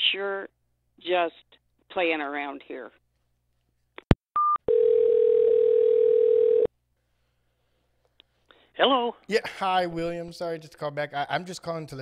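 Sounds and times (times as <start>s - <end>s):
low phone tone: 4.4s - 6.7s.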